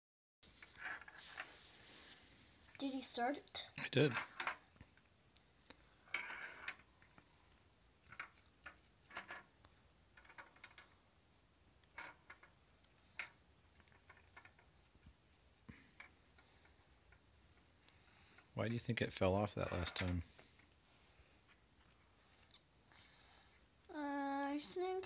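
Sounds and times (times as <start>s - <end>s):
ball clicking in plastic maze: 8.0s - 11.0s, 11.8s - 15.1s.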